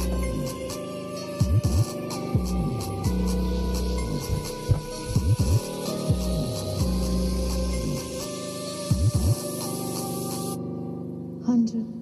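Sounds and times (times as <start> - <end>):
bass test tones through speaker: 0.0 - 0.5, 2.4 - 8.0
bass sweeps: 0.0 - 0.7, 1.6 - 8.2.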